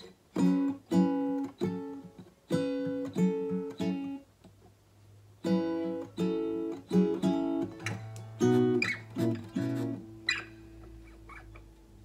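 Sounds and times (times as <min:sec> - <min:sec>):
short squeaks: 0:08.8 - 0:09.1, 0:10.2 - 0:11.7.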